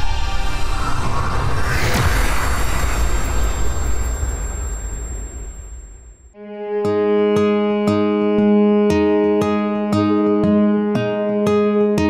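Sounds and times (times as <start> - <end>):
whoosh and deep rumble: 0.0 - 6.4.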